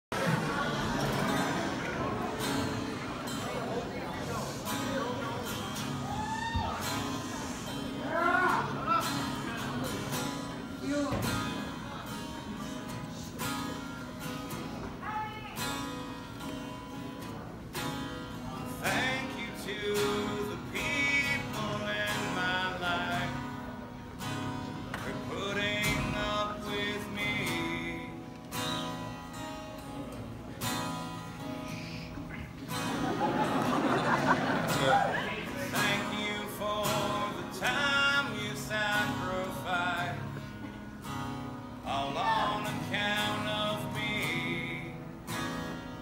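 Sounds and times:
acoustic guitar strumming: 0.2s - 46.0s
man singing: 18.4s - 24.0s, 25.0s - 28.4s, 35.1s - 40.8s, 41.7s - 45.6s.

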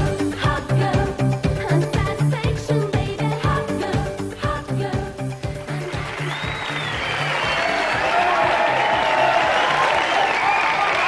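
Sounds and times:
audience applauding: 5.7s - 11.0s.

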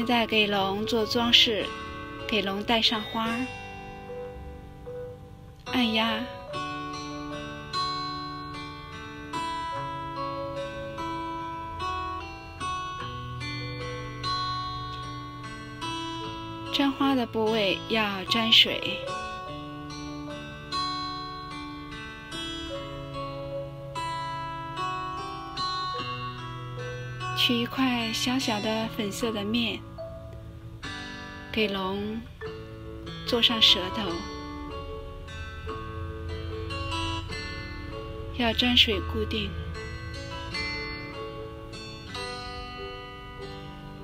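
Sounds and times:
plucked string melody: 0.0s - 44.0s.

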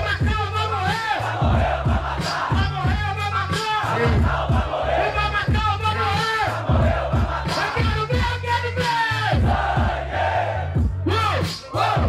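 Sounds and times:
crowd shouting: 0.0s - 12.0s
hip-hop beat over sound system: 0.0s - 12.0s.

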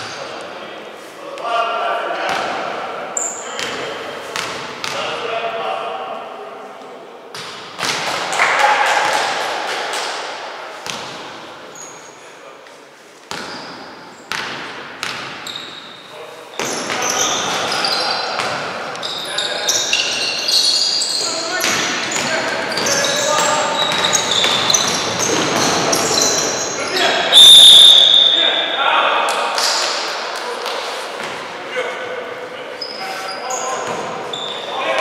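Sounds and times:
sneakers squeaking: 3.2s - 5.0s, 10.8s - 12.3s, 13.3s - 28.8s, 32.7s - 35.0s
players calling out: 16.6s - 30.1s
referee whistle blast: 27.3s - 28.8s.

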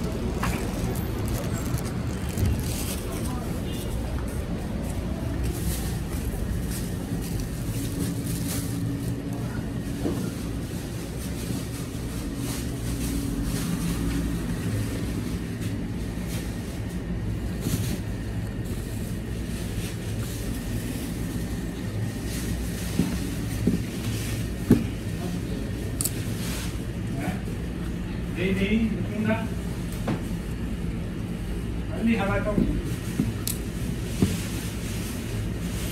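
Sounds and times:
store background rumble: 0.0s - 35.9s.

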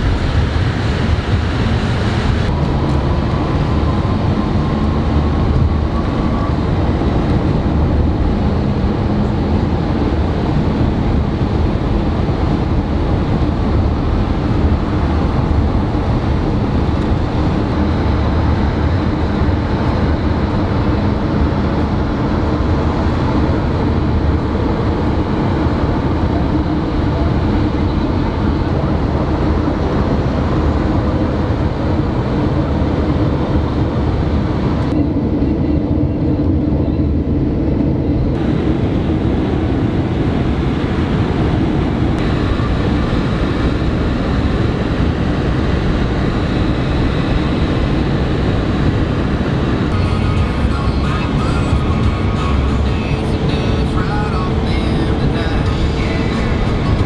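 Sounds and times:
car road and tyre noise: 0.0s - 57.0s.

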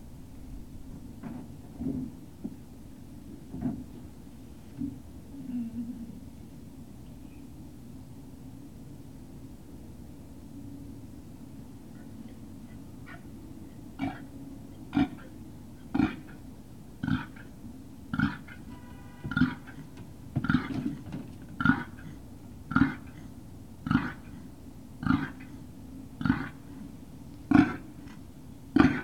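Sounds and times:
dog barking: 13.1s - 13.3s, 28.8s - 29.0s.

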